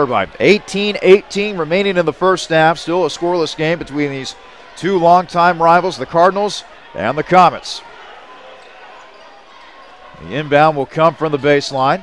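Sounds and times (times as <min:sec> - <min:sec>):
faint crowd murmur: 0:00.0 - 0:12.0.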